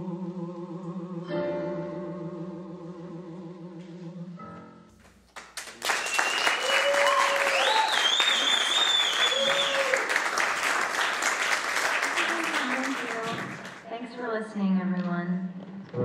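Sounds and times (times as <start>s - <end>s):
audience applauding: 5.3s - 13.9s
people cheering: 5.6s - 13.8s
high wavering whistle: 5.9s - 10.0s.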